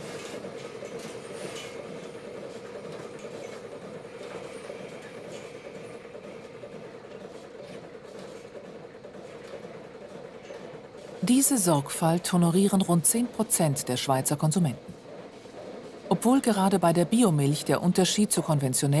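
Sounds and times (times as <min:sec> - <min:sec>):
milking machine hum and hiss: 0:00.0 - 0:19.0.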